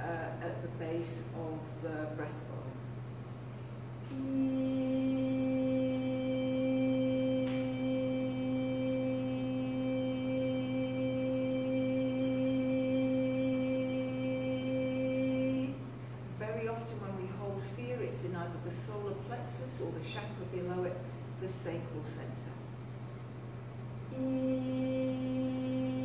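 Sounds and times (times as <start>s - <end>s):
woman singing long held note: 4.0s - 17.0s, 24.1s - 26.0s.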